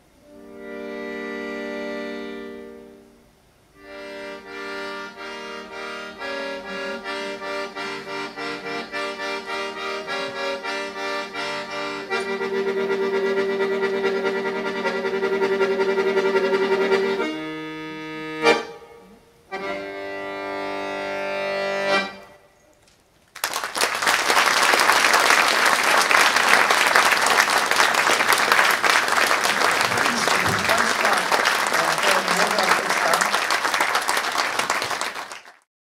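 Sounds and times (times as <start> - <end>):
accordion chords: 0.0 - 22.6, 24.1 - 35.6
audience applause: 23.3 - 35.7.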